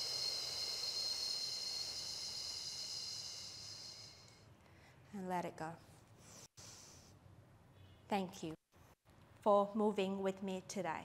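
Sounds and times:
person exhaling slowly: 0.0 - 4.4.

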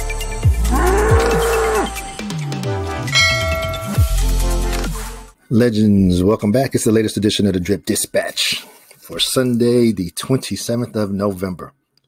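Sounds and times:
bull bellow sound effect: 0.6 - 2.0
bright bell-like chime: 3.1 - 4.3.

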